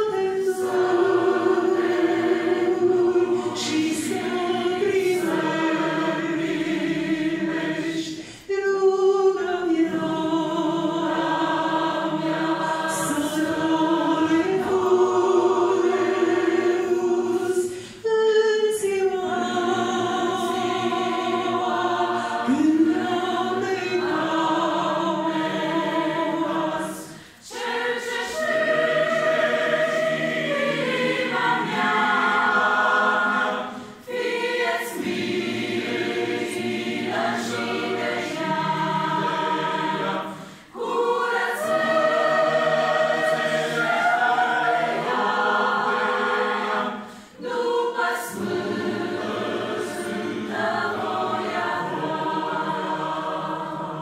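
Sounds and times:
mixed choir singing a hymn: 0.0s - 54.0s.

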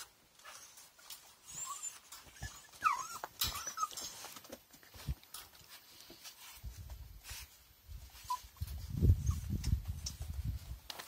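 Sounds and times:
clicks and rustles: 0.0s - 11.0s
dogs whining: 0.4s - 4.5s.

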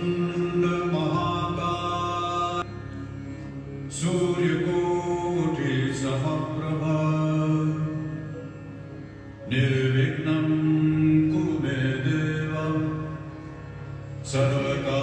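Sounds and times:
mantra chanted to music: 0.0s - 2.7s, 3.9s - 8.3s, 9.4s - 13.5s, 14.2s - 15.0s
steady drone: 0.0s - 15.0s.

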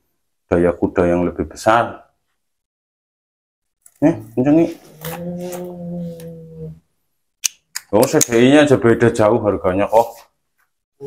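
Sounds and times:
man humming: 4.8s - 6.8s.

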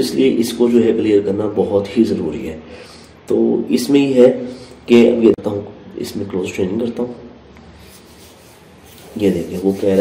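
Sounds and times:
faint background hiss: 0.0s - 10.0s
person speaking: 3.3s - 10.0s.

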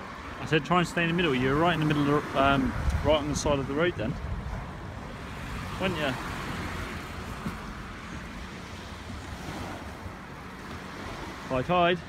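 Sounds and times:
wind rumbling on microphone: 1.2s - 11.5s
waves washing against sea wall: 4.4s - 12.0s.

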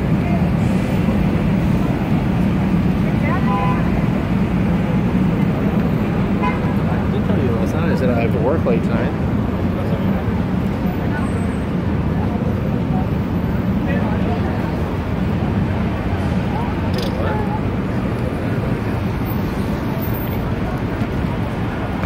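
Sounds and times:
pedestrians chattering: 0.0s - 22.0s
traffic rumble: 0.0s - 22.0s.

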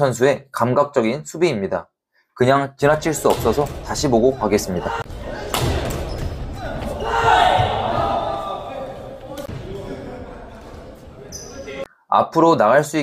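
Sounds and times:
players' voices echoing: 2.4s - 13.0s
shoes on court floor: 4.9s - 11.8s
racket hitting shuttlecock: 5.0s - 6.9s.

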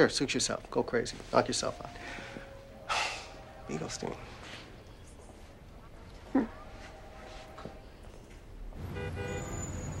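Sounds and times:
low rumble of road traffic: 0.0s - 10.0s
car horn blasts: 8.8s - 10.0s.

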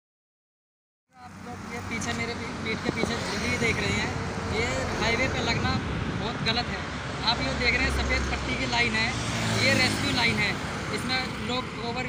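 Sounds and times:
highway traffic rushing: 1.1s - 12.0s.

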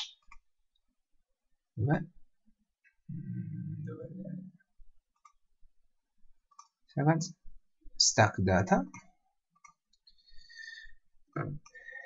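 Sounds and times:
computer mouse clicks: 5.1s - 5.4s, 6.5s - 6.8s, 8.9s - 10.2s.

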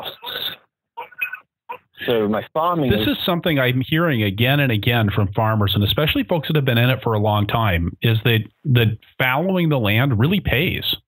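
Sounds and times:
man speaking: 0.0s - 0.6s, 2.0s - 11.0s
quiet vocal sounds: 0.0s - 3.1s.

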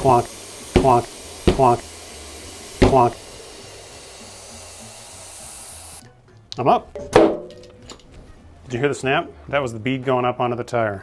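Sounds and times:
compressed air hissing: 0.0s - 6.0s.

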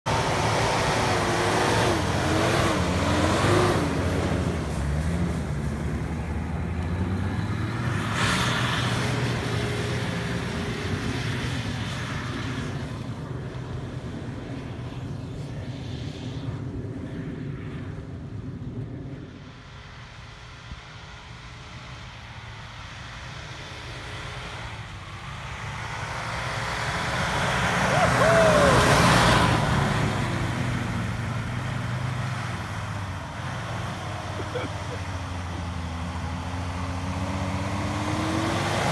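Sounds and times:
diesel engine revving: 0.0s - 11.8s, 23.8s - 38.9s.

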